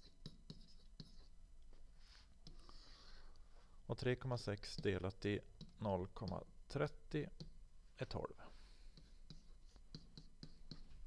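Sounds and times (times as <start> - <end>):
stylus tapping on tablet: 5.6 - 6.5, 7.4 - 7.6, 8.9 - 11.0.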